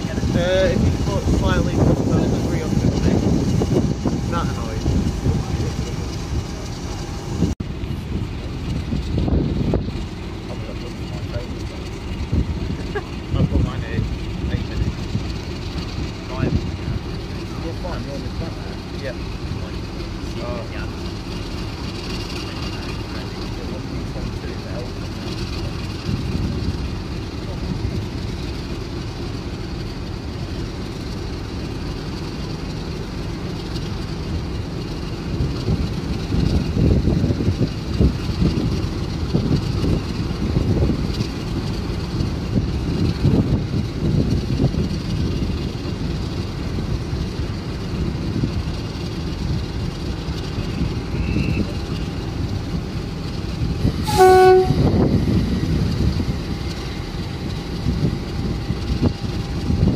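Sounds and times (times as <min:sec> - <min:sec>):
diesel locomotive engine rumbling: 0:00.0 - 0:59.9
train horn blast: 0:54.0 - 0:55.1.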